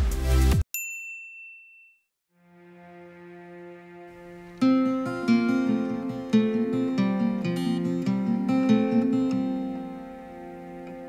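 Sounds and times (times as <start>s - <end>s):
bright ding: 0.8s - 2.1s
soft music on a held chord: 2.4s - 11.0s.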